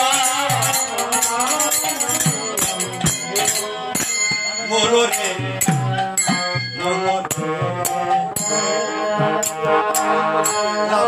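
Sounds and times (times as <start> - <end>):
harmonium chords: 0.0 - 11.0
sharp percussion strikes: 0.0 - 11.0.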